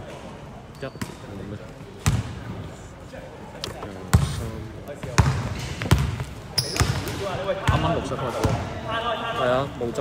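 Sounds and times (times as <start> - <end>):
basketball bouncing on wooden floor: 5.1 - 6.2.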